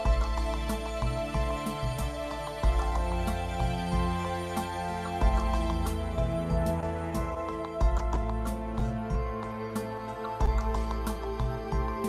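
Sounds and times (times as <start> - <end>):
instrumental music with bass line: 0.0 - 12.0.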